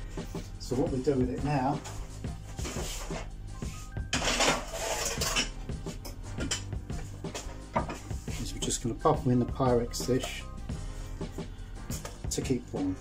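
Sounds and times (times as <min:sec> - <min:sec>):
background music: 0:00.0 - 0:13.0
glass dish clinks and knocks: 0:04.1 - 0:05.6, 0:06.4 - 0:06.7, 0:07.8 - 0:08.0
scraping on wooden board: 0:04.2 - 0:05.6.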